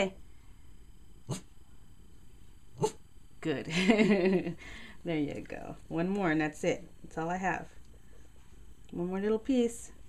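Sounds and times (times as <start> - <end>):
small dog barking: 2.8 - 3.0.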